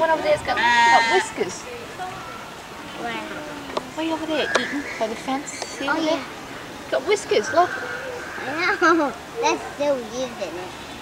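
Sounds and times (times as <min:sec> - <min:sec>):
goat bleating: 0:00.5 - 0:01.3.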